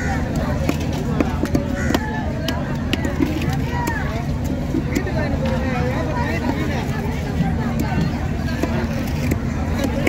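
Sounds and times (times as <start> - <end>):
hubbub of voices: 0.0 - 10.0
traffic rumble: 0.0 - 10.0.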